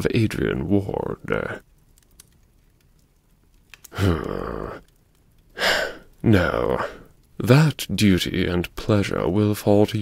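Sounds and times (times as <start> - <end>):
voice: 0.0 - 1.6, 4.0 - 4.8, 6.2 - 10.0
small sharp clicks: 1.6 - 6.2.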